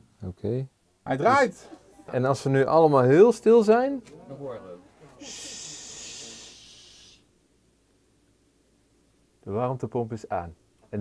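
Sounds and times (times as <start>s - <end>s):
person shushing: 5.0s - 7.2s.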